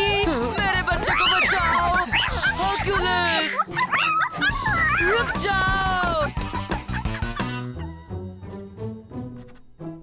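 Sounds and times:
background music: 0:00.0 - 0:10.0
dog yelping and whimpering: 0:03.5 - 0:05.0.

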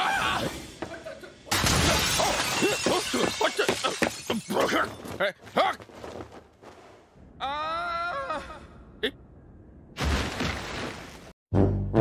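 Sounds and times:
people yelling: 0:00.0 - 0:00.6
glass window shattering: 0:01.5 - 0:05.0.

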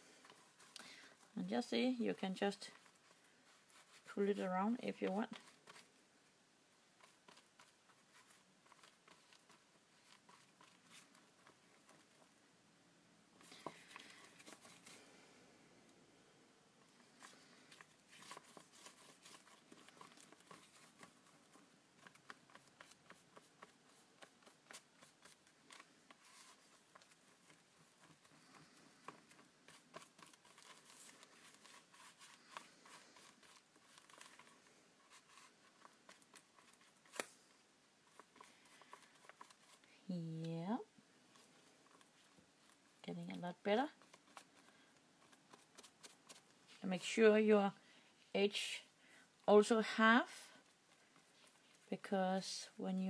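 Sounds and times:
paper rustling and clicking: 0:17.1 - 0:39.9.

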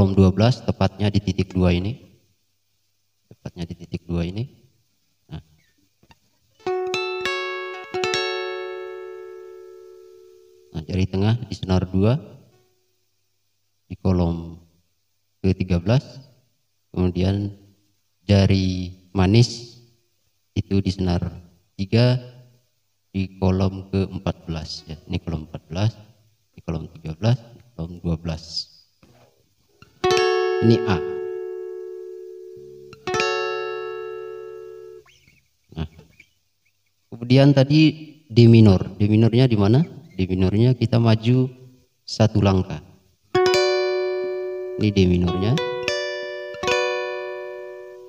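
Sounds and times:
acoustic guitar plucks: 0:06.0 - 0:10.8, 0:29.0 - 0:36.3, 0:43.4 - 0:48.0.

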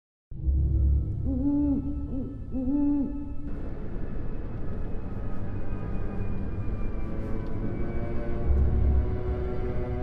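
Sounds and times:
owl hooting: 0:01.2 - 0:03.5.

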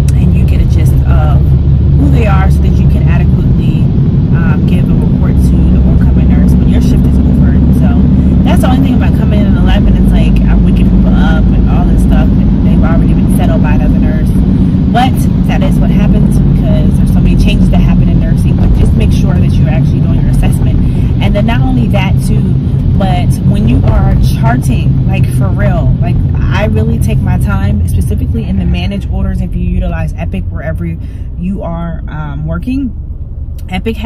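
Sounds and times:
woman talking: 0:00.0 - 0:33.0, 0:33.6 - 0:34.0
car cabin road rumble: 0:00.0 - 0:34.0.

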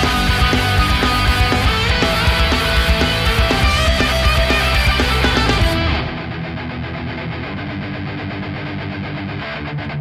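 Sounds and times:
distorted electric guitar: 0:00.0 - 0:10.0.

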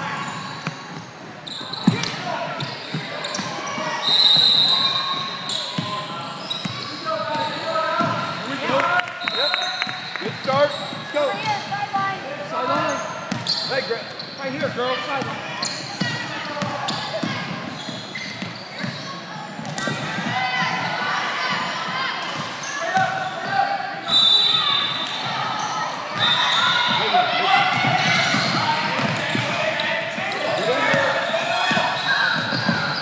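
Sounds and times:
shoe squeals: 0:00.0 - 0:11.8, 0:12.6 - 0:21.8, 0:22.5 - 0:33.0.

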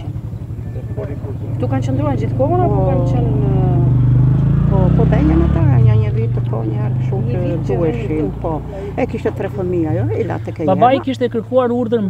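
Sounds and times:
vehicle engine idling: 0:00.0 - 0:12.0
person speaking: 0:04.9 - 0:11.4.

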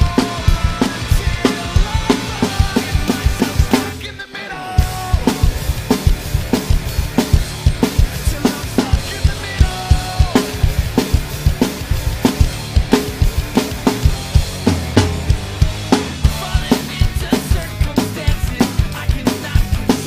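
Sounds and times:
drum kit playing rock beat: 0:00.0 - 0:20.0
recorded rock song: 0:00.0 - 0:20.0.

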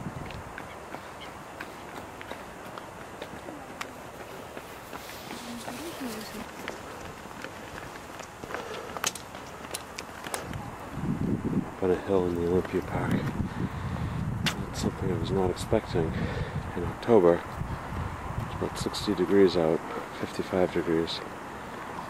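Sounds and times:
footsteps on a path: 0:00.0 - 0:14.7, 0:17.3 - 0:20.0
steady outdoor hiss: 0:00.0 - 0:22.0.

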